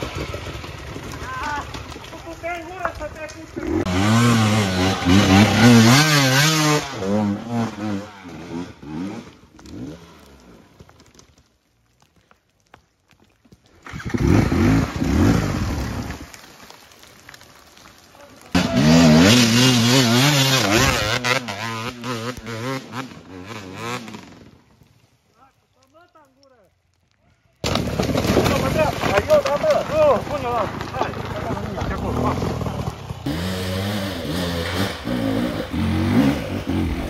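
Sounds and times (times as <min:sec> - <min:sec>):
dirt bike engines revving: 0:00.0 - 0:10.6, 0:13.8 - 0:16.3, 0:18.4 - 0:24.6, 0:28.6 - 0:37.0.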